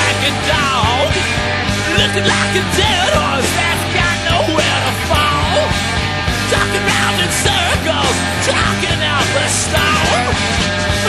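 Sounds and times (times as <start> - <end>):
punk rock with electric guitar: 0.0 - 11.0.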